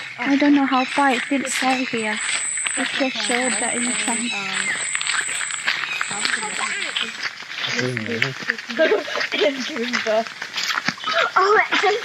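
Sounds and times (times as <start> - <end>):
high-pitched whine: 0.0 - 8.4
footsteps on gravel: 0.0 - 12.0
voices: 0.0 - 12.0.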